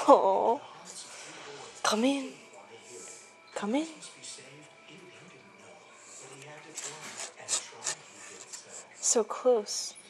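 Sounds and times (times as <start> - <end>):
scraping rubs against window: 6.2 - 9.2.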